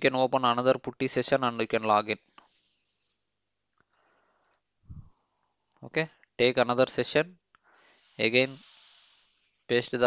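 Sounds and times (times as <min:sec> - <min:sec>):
computer mouse clicks: 0:03.4 - 0:05.8.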